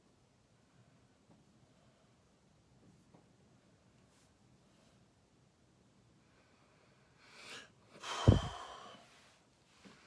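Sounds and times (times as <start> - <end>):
man sighing: 8.0 - 9.0.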